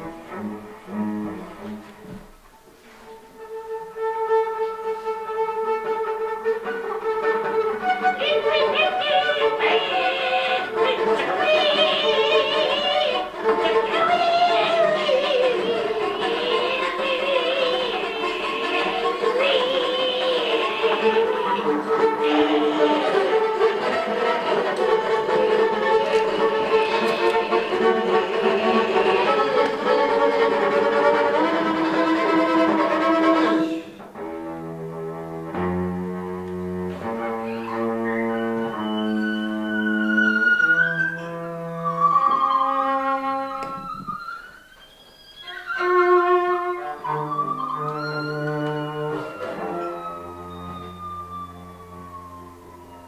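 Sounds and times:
high sliding tones: 8.0 - 32.4
cello bowed hard: 9.0 - 44.4.

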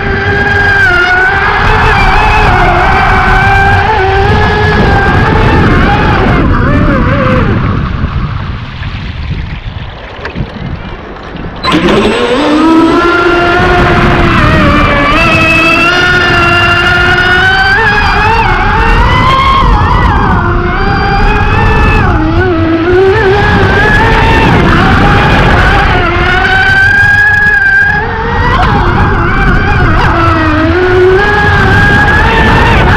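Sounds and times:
high motor whine: 0.0 - 32.9
rush of water on hull: 0.0 - 32.9.

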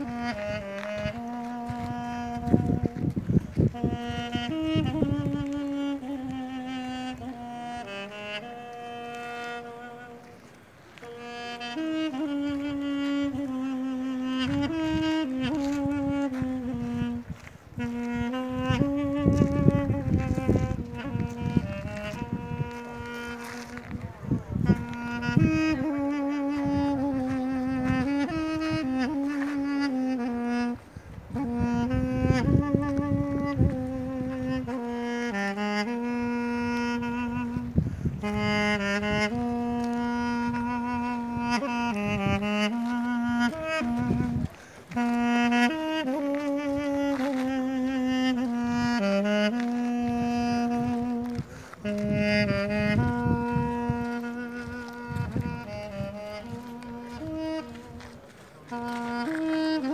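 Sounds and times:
double-reed woodwind melody: 0.0 - 59.9.

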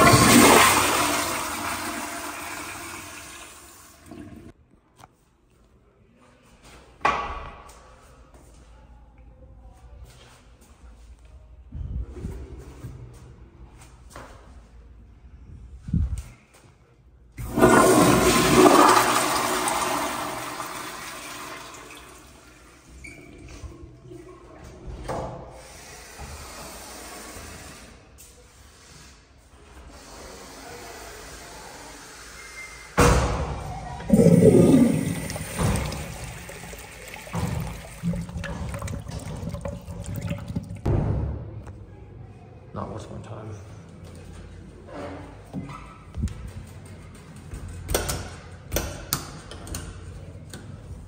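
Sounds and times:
toilet flushing: 0.0 - 4.5, 17.4 - 27.7, 33.4 - 40.9.

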